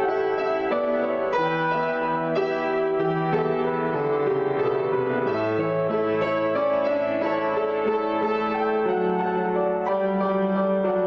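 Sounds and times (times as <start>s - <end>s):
grand piano chords: 0.0s - 11.0s.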